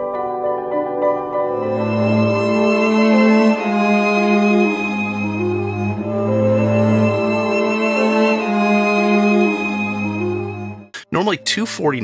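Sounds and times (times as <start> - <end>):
string ensemble playing chords: 1.6 - 12.0.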